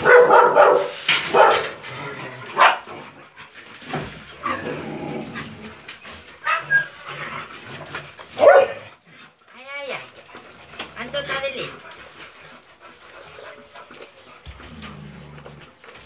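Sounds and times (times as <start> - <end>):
dogs barking and yelping: 0.0 - 9.5, 10.1 - 16.0
dogs whimpering whines: 4.4 - 7.5.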